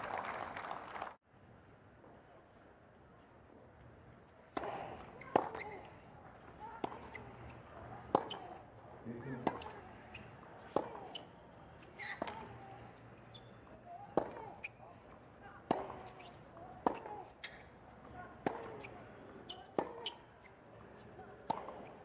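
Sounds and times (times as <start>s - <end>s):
racket hitting tennis ball: 4.5s - 5.9s, 6.5s - 12.7s, 13.9s - 20.3s, 21.2s - 22.0s
tennis ball bouncing: 4.5s - 22.0s.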